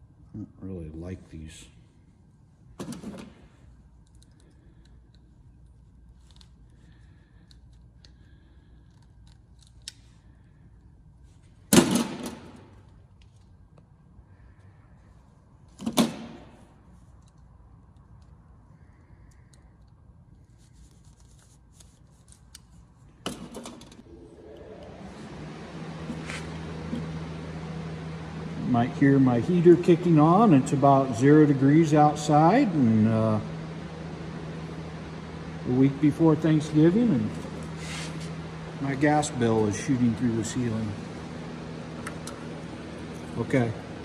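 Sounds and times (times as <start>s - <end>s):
low hum: 23.0s - 44.0s
heater rush of air: 24.0s - 44.0s.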